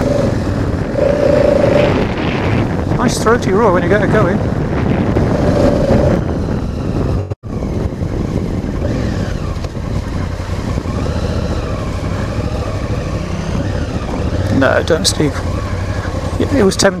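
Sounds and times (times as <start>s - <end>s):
motorcycle engine running: 0.0s - 17.0s.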